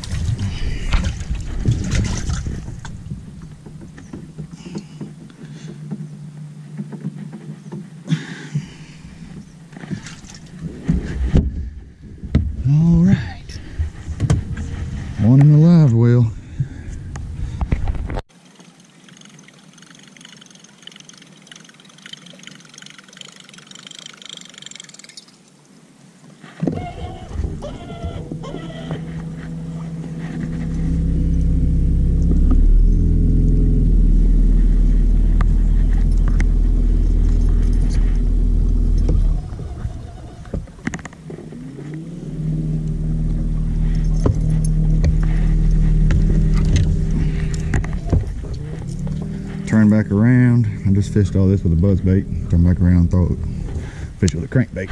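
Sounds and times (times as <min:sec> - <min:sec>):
boat motor throttling up: 0:00.0 - 0:07.7, 0:19.0 - 0:25.1, 0:26.7 - 0:54.9.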